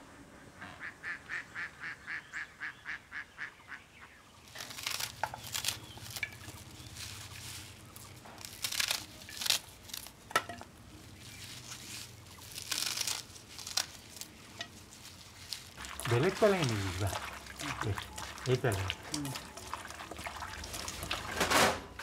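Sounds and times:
leafy greens torn by hand: 4.5s - 21.6s.

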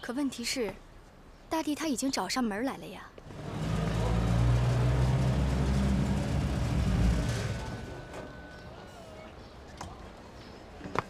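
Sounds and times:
jeep engine droning: 3.2s - 8.8s.

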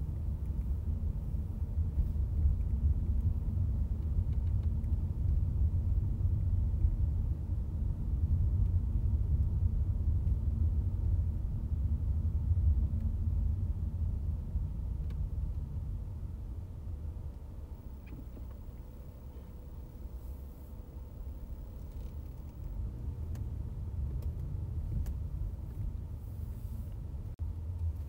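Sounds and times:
car driving rumble: 0.0s - 28.0s.

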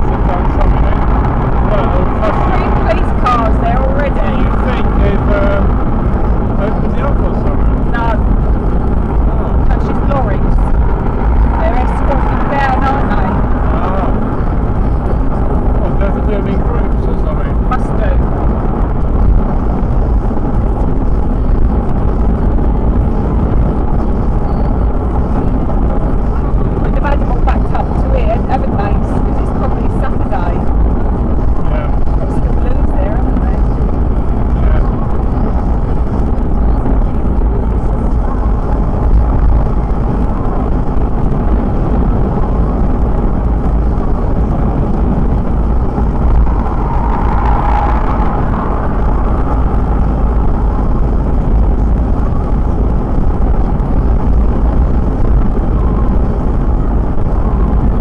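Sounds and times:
indistinct voices: 0.0s - 18.4s, 19.0s - 58.0s
car tyre and engine rumble: 0.0s - 58.0s.

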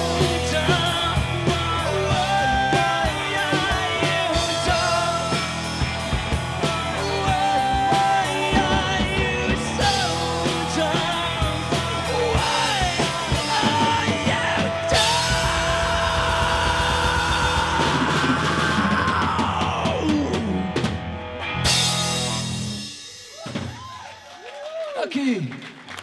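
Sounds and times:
man singing long notes: 0.0s - 5.8s, 6.5s - 20.8s
drum kit: 0.0s - 24.2s
electric guitar: 0.0s - 24.2s.

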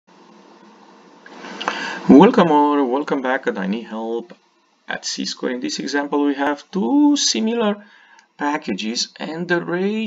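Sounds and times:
faint room hiss: 0.1s - 10.0s
person drawing a breath: 1.4s - 2.1s, 7.8s - 8.3s
mouth click: 1.6s - 1.8s.

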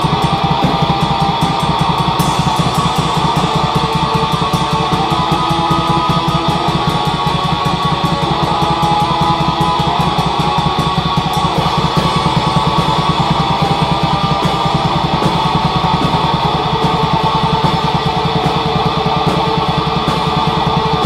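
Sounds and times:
distorted electric guitar: 0.0s - 21.0s
fast drum beat: 0.0s - 21.0s.

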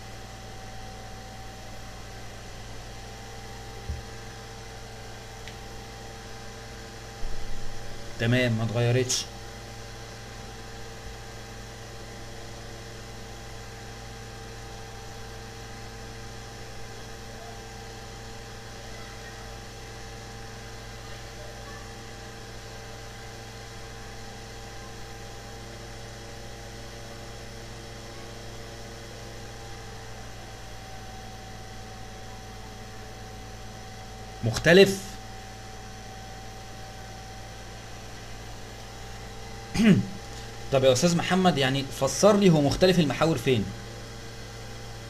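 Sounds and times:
low electrical hum: 0.0s - 45.0s.

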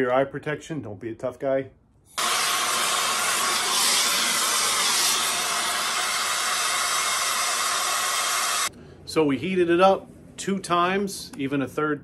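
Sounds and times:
gas torch flame hissing: 2.2s - 8.7s.

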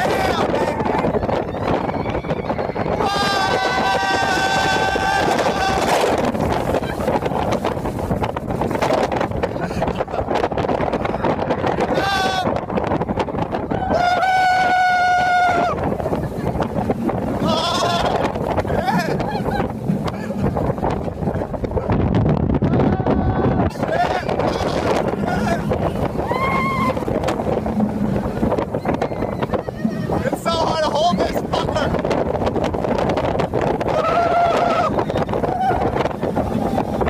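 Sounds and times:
roller coaster riders yelling: 0.0s - 7.6s, 9.9s - 37.0s
roller coaster ride noise: 0.0s - 37.0s
wind noise on microphone: 0.0s - 37.0s.

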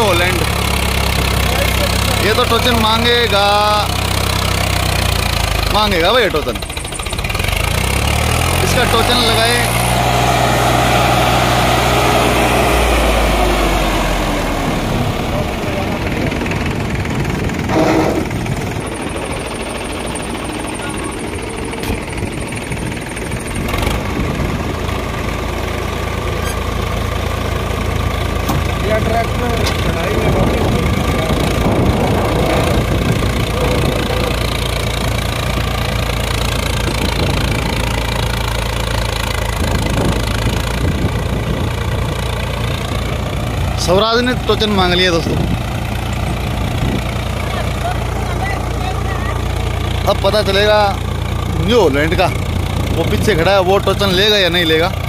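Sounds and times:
tractor diesel engine labouring: 0.0s - 55.0s.

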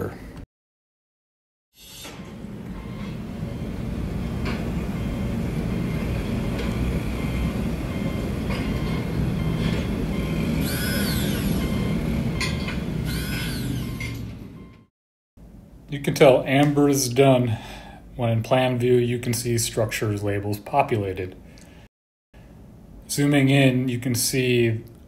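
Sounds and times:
whistle-like sweeps: 9.4s - 12.0s.

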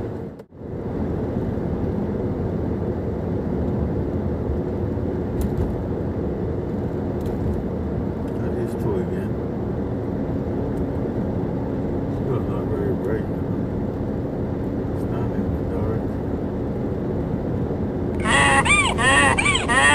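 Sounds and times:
car road and engine noise: 0.0s - 19.9s
cartoon donkey bray: 18.2s - 19.9s.

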